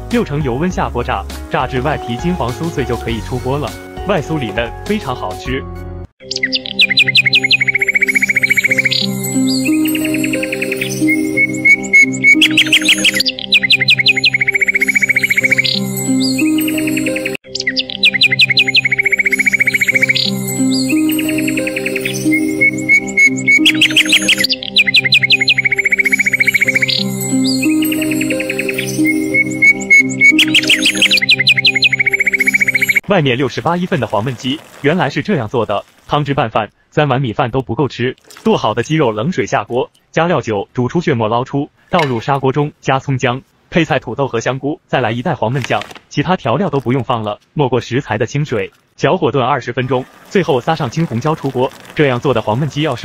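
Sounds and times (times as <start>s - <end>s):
light instrumental music: 0.0s - 33.2s
bird chirp trills: 6.2s - 33.1s.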